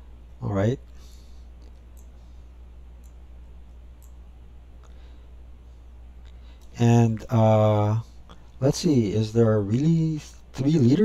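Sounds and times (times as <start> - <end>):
computer mouse clicking: 1.6 - 2.2, 3.0 - 4.2.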